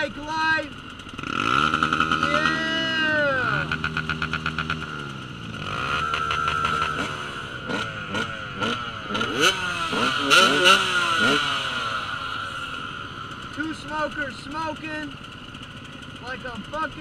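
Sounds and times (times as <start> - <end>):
dirt bike engine revving: 0.0 - 17.0.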